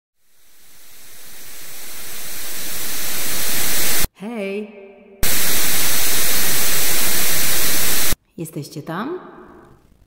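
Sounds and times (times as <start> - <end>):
static hiss: 0.2 - 4.1, 5.2 - 8.2.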